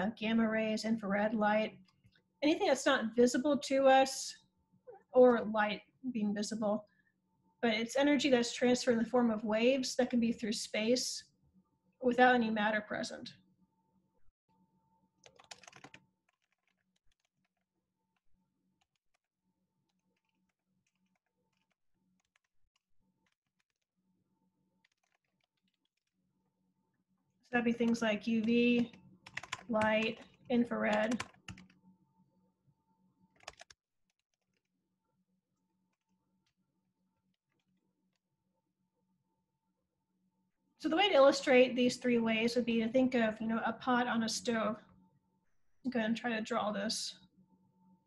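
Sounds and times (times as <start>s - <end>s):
typing on computer keyboard: 15.2s - 17.6s, 19.9s - 22.5s, 24.8s - 26.1s, 27.8s - 31.8s, 33.3s - 34.7s.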